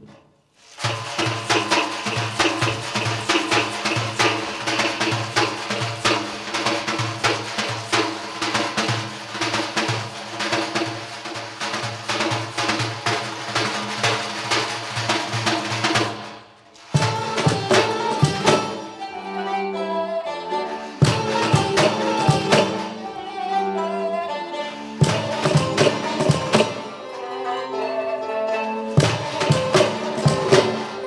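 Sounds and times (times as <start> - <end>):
frame drum fast rhythm: 0.6 - 19.0, 20.9 - 23.1, 25.0 - 27.1, 29.0 - 31.0.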